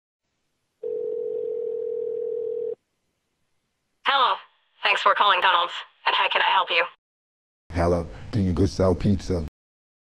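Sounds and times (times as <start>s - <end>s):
telephone ringback tone: 0.8s - 2.8s.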